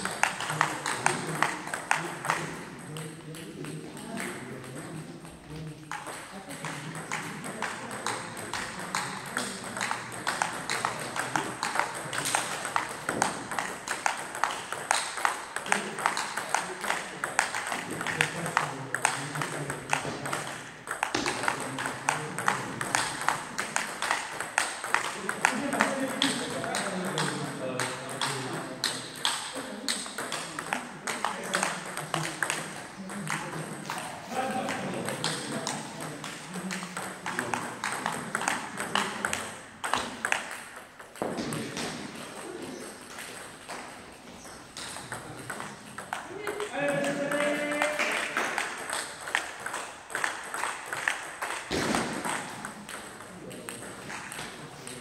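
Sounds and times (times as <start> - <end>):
table tennis balls clicking: 0.0 - 55.0.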